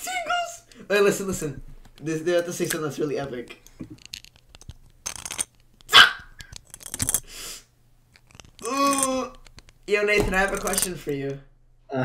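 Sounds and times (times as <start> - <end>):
plastic bricks clicking: 1.8 - 7.3, 8.1 - 11.4
short bark-like yelp: 5.9 - 6.3.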